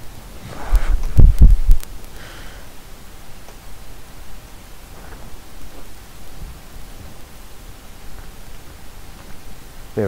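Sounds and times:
hiss with low rumble: 0:00.0 - 0:10.0.

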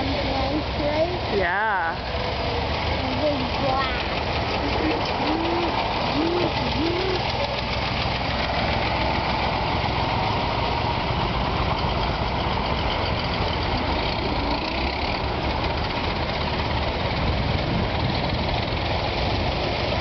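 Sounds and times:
antique car engines running: 0:00.0 - 0:20.0.

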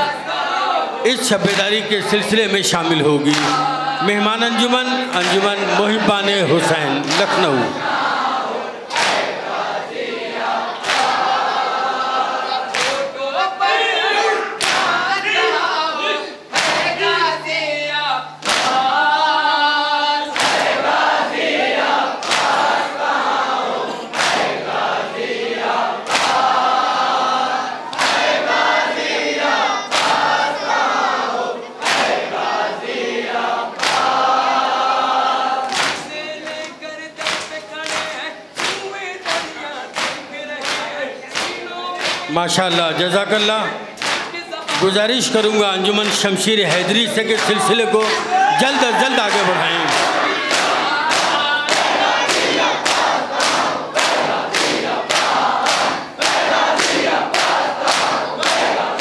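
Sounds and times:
crowd chanting in chorus: 0:00.0 - 0:59.0
chest-beating slaps: 0:03.3 - 0:03.7, 0:14.6 - 0:15.0, 0:16.5 - 0:17.0, 0:18.2 - 0:18.9
open-hand slaps on bare chests: 0:14.6 - 0:14.9, 0:37.2 - 0:42.3.

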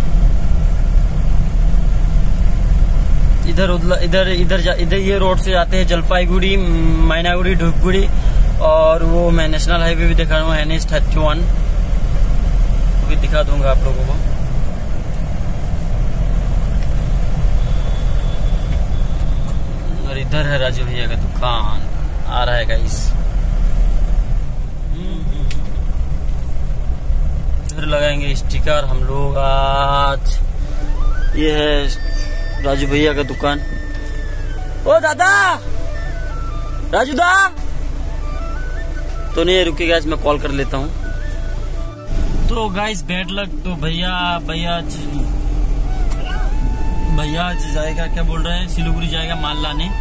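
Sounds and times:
car engine and tyre rumble: 0:00.0 - 0:50.0.

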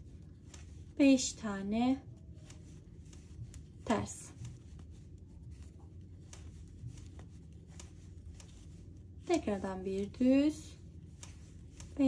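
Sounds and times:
soft clicks: 0:00.0 - 0:01.0, 0:02.0 - 0:10.2, 0:10.8 - 0:12.0
knitting needles rubbing and ticking: 0:00.0 - 0:12.0.

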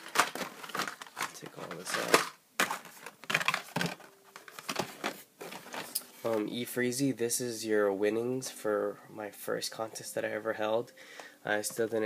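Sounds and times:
plastic packaging crinkling: 0:00.0 - 0:06.6.

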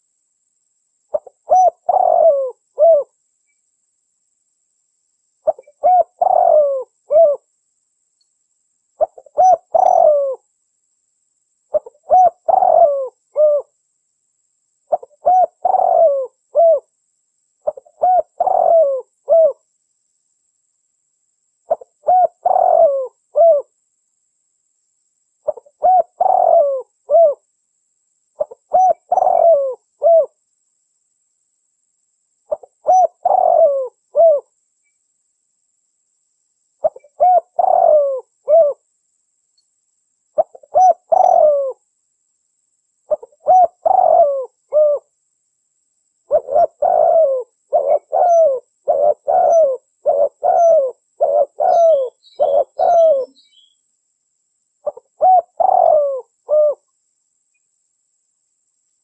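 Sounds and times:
dove cooing: 0:01.1 - 0:03.1, 0:05.4 - 0:07.5, 0:09.0 - 0:10.4, 0:11.7 - 0:13.7, 0:14.9 - 0:16.9, 0:17.6 - 0:19.6, 0:21.7 - 0:23.7, 0:25.4 - 0:27.4, 0:28.4 - 0:30.4, 0:32.5 - 0:34.5, 0:36.8 - 0:38.8, 0:40.4 - 0:41.8, 0:43.1 - 0:45.1, 0:46.3 - 0:53.5, 0:54.8 - 0:56.8.

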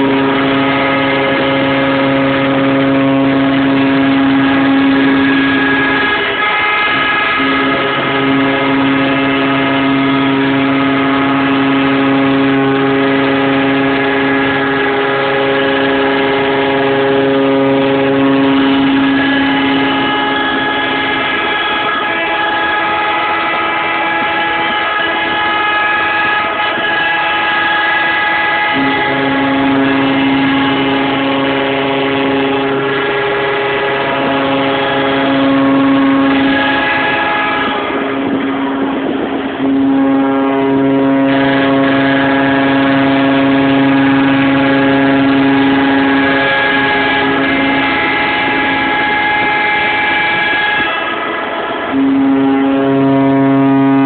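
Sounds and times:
ship horns blasting: 0:00.0 - 0:54.0.

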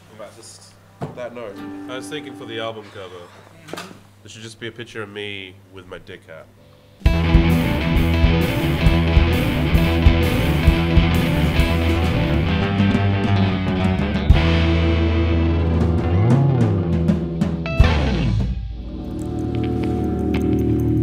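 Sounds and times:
drum kit: 0:07.0 - 0:20.0
bass guitar: 0:07.0 - 0:21.0
electric guitar: 0:07.0 - 0:21.0.

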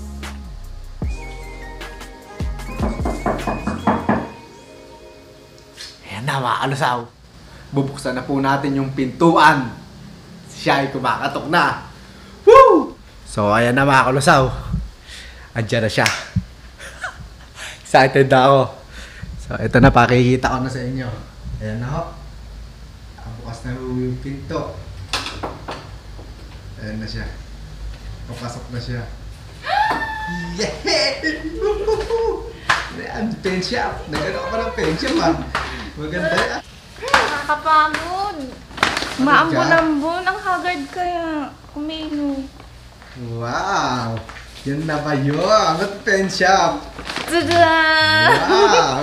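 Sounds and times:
background music held tones: 0:00.0 - 0:07.1
knocking on a door: 0:02.8 - 0:04.4.

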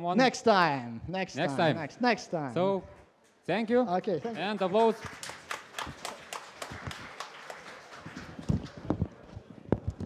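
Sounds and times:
audience applause: 0:04.2 - 0:09.4.

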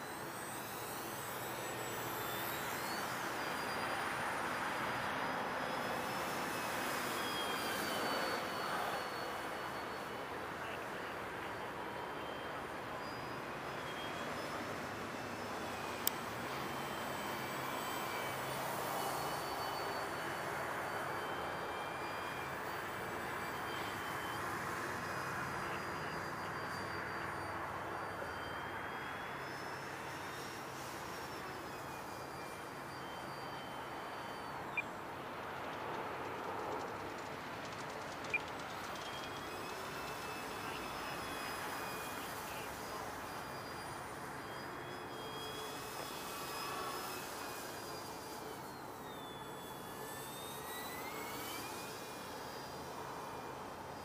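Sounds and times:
model plane motor whine: 0:00.0 - 0:54.0.

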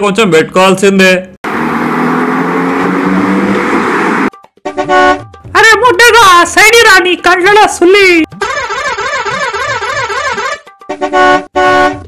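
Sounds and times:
engine and road noise: 0:01.3 - 0:05.4
car horn blast: 0:04.6 - 0:05.3, 0:08.4 - 0:12.0.

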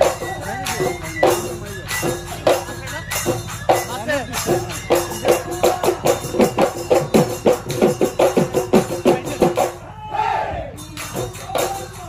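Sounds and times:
metallic cymbal jingling: 0:00.0 - 0:10.0, 0:10.7 - 0:12.0
drums beaten fast: 0:00.0 - 0:12.0.

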